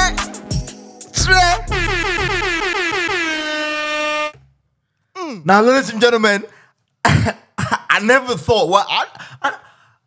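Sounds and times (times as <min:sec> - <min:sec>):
air horn blasts: 0:01.3 - 0:04.4.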